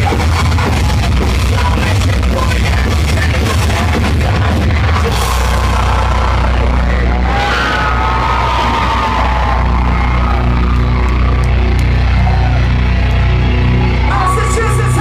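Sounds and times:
metal band playing live: 0.0s - 15.0s
person singing: 14.1s - 15.0s.

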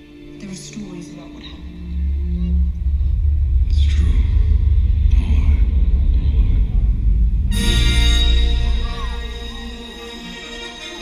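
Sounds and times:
loud deep rumble: 0.4s - 11.0s
whoosh: 1.5s - 10.0s.

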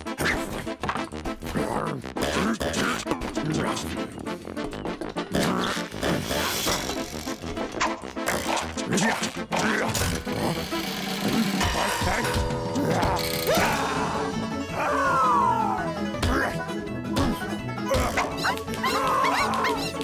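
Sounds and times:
lively cartoon music: 0.0s - 20.0s.

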